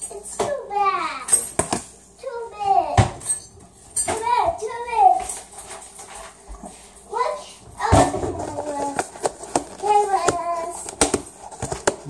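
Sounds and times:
high-pitched wordless voice: 0:02.2 - 0:03.2, 0:04.2 - 0:05.3, 0:07.1 - 0:09.0, 0:09.8 - 0:10.8
plastic containers clicking: 0:08.3 - 0:12.0.

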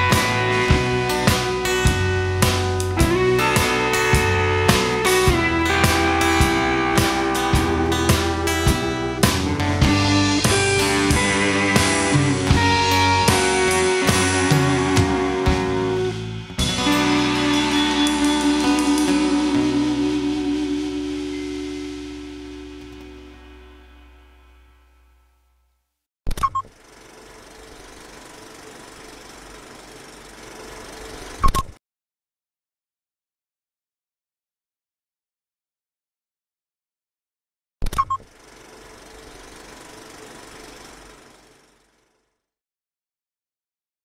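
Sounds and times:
guitar and bass chord ringing: 0:00.0 - 0:25.8.

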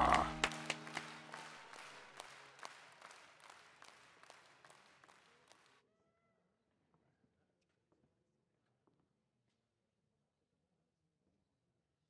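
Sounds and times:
held chord: 0:00.0 - 0:02.0.

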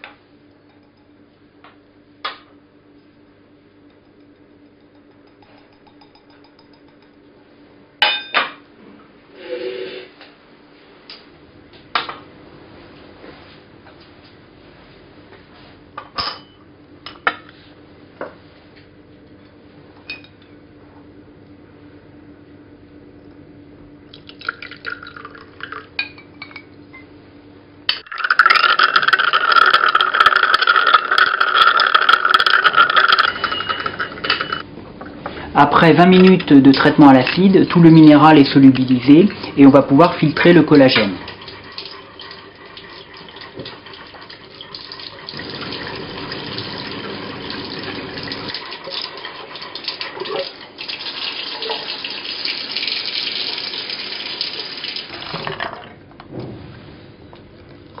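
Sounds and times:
glass clinks: 0:03.9 - 0:07.2, 0:32.6 - 0:34.6
liquid pouring into glass: 0:24.1 - 0:26.0, 0:28.0 - 0:34.6, 0:41.2 - 0:55.9.

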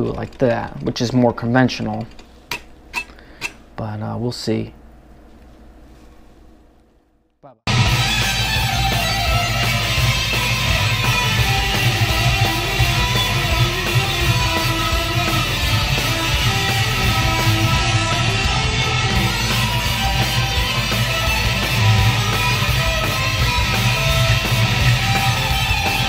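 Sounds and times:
electric guitar lead lines: 0:07.7 - 0:26.0
rock backing track: 0:07.7 - 0:26.0.

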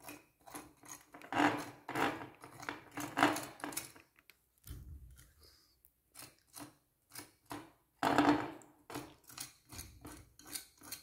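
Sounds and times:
tool scraping painted bottle: 0:00.0 - 0:04.0, 0:06.1 - 0:11.0.

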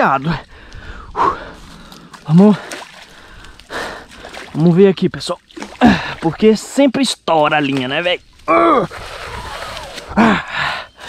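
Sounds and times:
man sighing with effort: 0:08.5 - 0:11.0.

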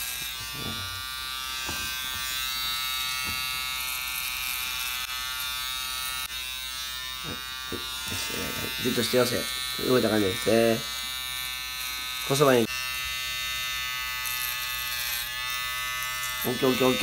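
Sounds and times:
electric hair clippers buzzing: 0:00.0 - 0:17.0.

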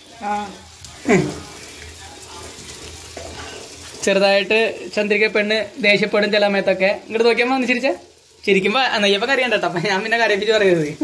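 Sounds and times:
batter sizzling in hot oil: 0:00.0 - 0:11.0.

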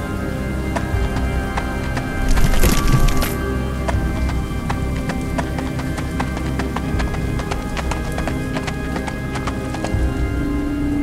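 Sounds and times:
background music with low tones: 0:00.0 - 0:11.0
sharp clip-clop clicks: 0:00.7 - 0:10.4.

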